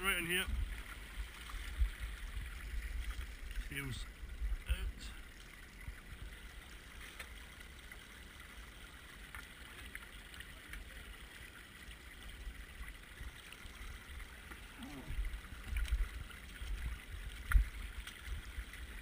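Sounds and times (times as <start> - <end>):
water rushing over stones: 0.0 - 19.0.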